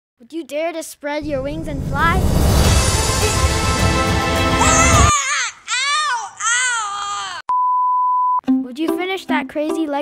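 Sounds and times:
boy crying out: 4.6 - 7.4
plucked-string music: 8.5 - 10.0.

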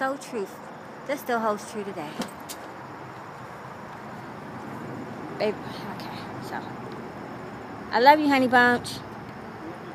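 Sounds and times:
outdoor background noise: 0.0 - 9.9.

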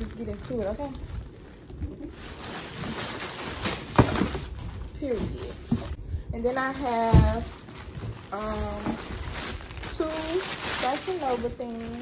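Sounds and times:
plastic bags rustling and sliding: 0.0 - 12.0.

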